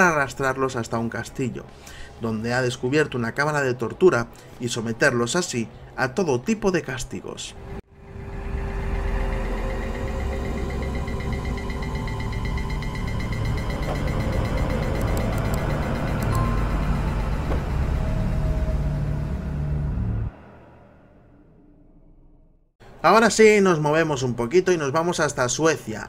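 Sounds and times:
dark low rumbling drone: 0:07.6 - 0:22.9.

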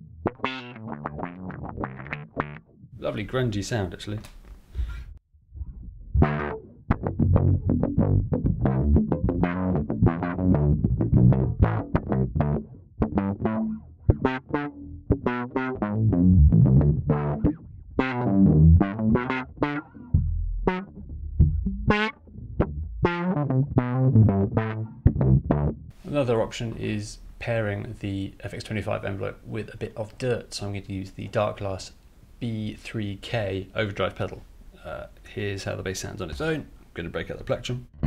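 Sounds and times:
distorted electric bass riff: 0:00.0 - 0:03.0, 0:05.4 - 0:26.0.

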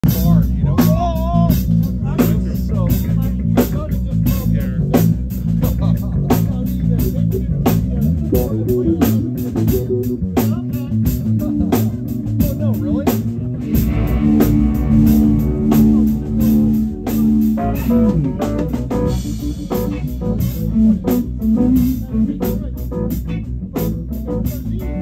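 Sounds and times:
drum kit beat: 0:00.0 - 0:25.0
electric bass line: 0:00.0 - 0:25.0
electric guitar: 0:07.0 - 0:25.0.

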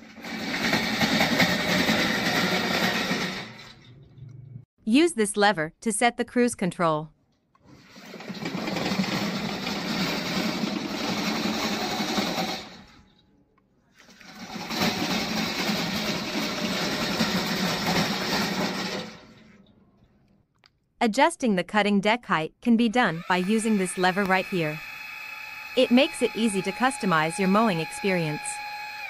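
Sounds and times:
electric motors and tracks running: 0:00.0 - 0:03.8, 0:07.8 - 0:13.1, 0:14.3 - 0:19.3, 0:23.2 - 0:29.0.

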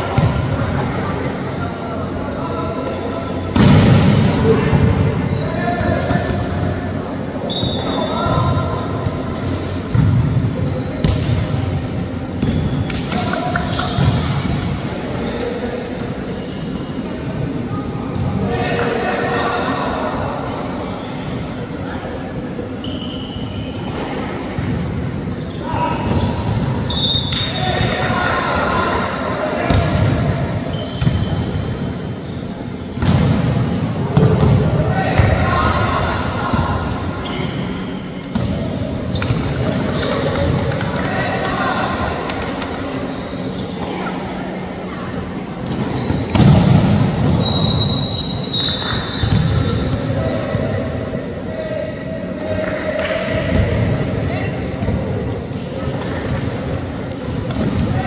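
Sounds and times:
players' voices: 0:00.0 - 0:58.0.

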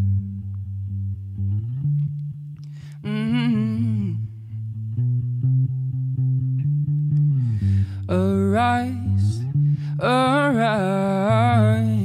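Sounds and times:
bass line: 0:00.0 - 0:12.0
electric guitar: 0:00.0 - 0:12.0.

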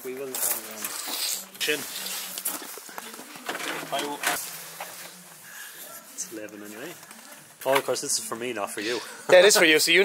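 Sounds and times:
quiet indistinct talk: 0:00.0 - 0:10.0.

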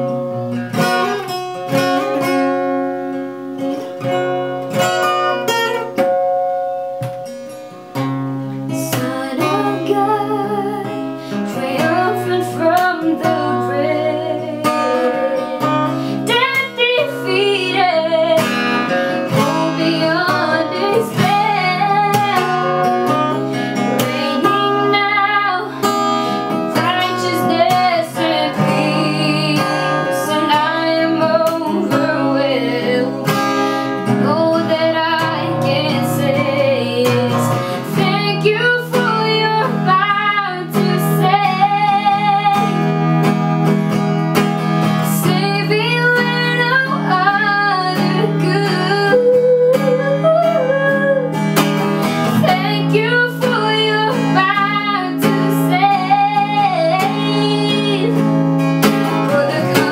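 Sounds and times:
strummed acoustic guitar: 0:00.0 - 0:59.9
boy singing a worship song: 0:08.8 - 0:18.6, 0:19.2 - 0:22.6, 0:23.9 - 0:26.0, 0:26.7 - 0:33.4, 0:34.1 - 0:42.7, 0:45.1 - 0:51.3, 0:52.4 - 0:58.2, 0:59.2 - 0:59.9.

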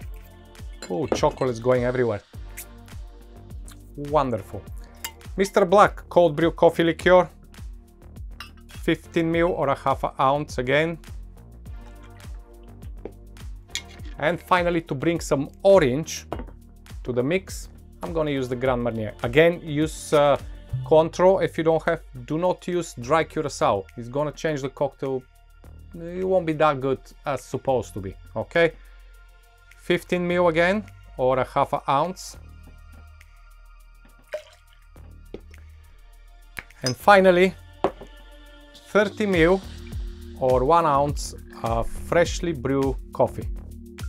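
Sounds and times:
background music with steady beat: 0:00.0 - 0:44.0
liquid dripping into metal shaker: 0:13.7 - 0:14.2, 0:34.1 - 0:35.6.

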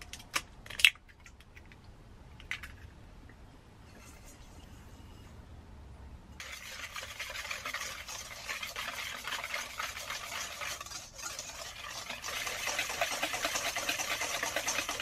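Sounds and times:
whisk beating in metal bowl: 0:06.4 - 0:15.0.

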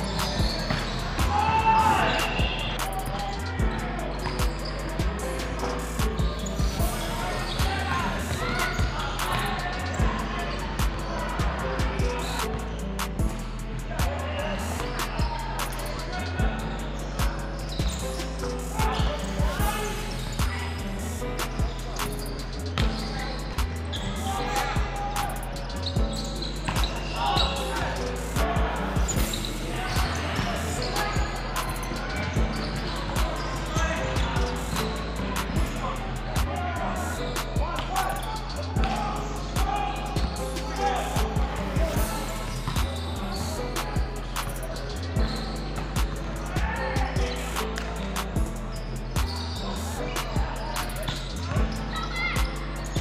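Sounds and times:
background music: 0:00.0 - 0:53.0
players calling: 0:00.0 - 0:53.0.

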